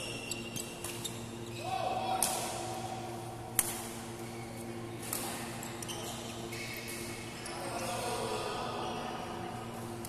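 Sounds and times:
court shoes squeaking: 0:00.0 - 0:01.7, 0:03.6 - 0:07.6
rackets striking shuttlecock: 0:03.5 - 0:04.0.

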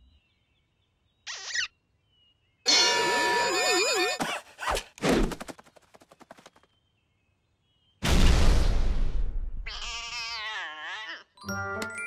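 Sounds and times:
cartoon cat yowling: 0:09.7 - 0:11.3.

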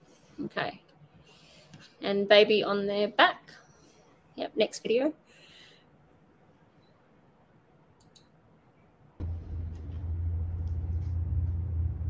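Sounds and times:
steady low hum: 0:09.1 - 0:12.0.

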